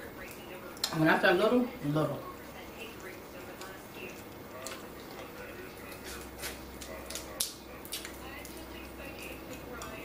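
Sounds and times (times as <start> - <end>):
crab shells cracking by hand: 6.8 - 8.2.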